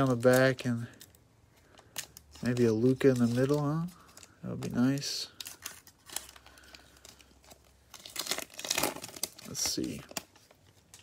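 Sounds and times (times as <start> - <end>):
cellophane wrapper crinkling: 0.0 - 11.0.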